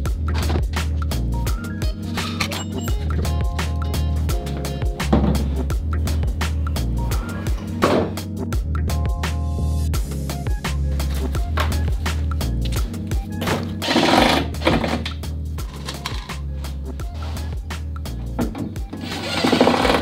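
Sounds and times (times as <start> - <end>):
background music: 0.0 - 20.0
cordless drill driving screws: 13.8 - 14.5, 19.0 - 20.0.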